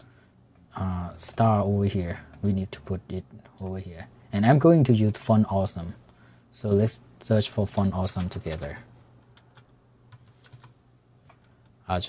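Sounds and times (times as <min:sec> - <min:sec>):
typing on computer keyboard: 0:09.3 - 0:11.4.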